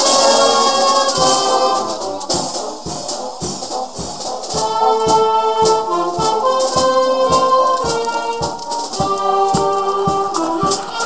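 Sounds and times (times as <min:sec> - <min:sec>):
steady drum beat: 0:00.0 - 0:11.0
wind band chords: 0:00.0 - 0:11.0.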